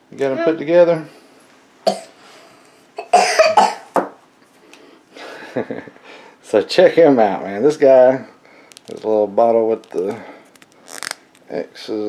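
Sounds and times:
person coughing: 1.9s - 2.1s, 3.0s - 4.0s.

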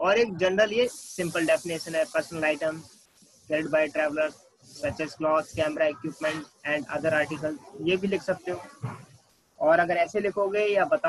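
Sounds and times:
man speaking: 0.0s - 2.9s, 3.5s - 8.7s, 9.6s - 11.0s
faint hiss: 0.0s - 11.0s.

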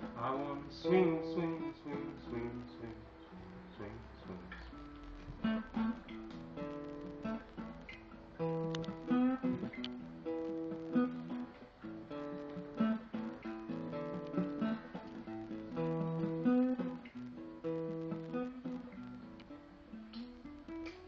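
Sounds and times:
acoustic guitar strummed and picked: 0.0s - 21.0s.

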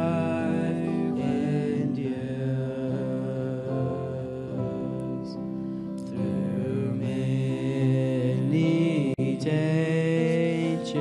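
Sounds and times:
keyboard: 0.0s - 11.0s
people singing into microphones: 0.0s - 11.0s.

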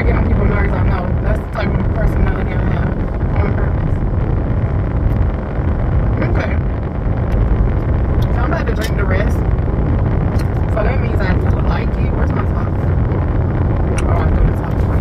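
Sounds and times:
woman speaking: 0.0s - 3.9s, 6.2s - 6.6s, 8.2s - 9.4s, 10.4s - 12.9s, 14.0s - 15.0s
car cabin rumble: 0.0s - 15.0s.

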